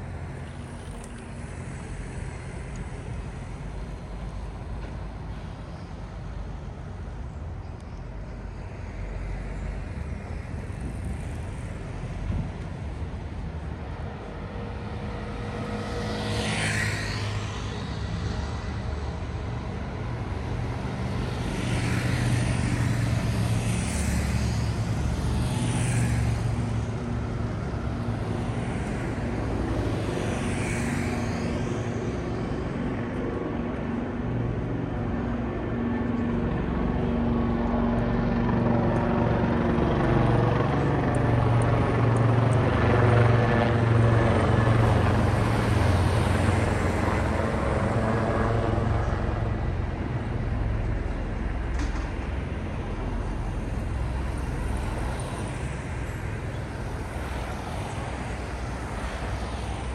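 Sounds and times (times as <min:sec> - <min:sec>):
vehicles swishing past: 0:08.5 - 0:37.4, 0:38.1 - 0:59.9.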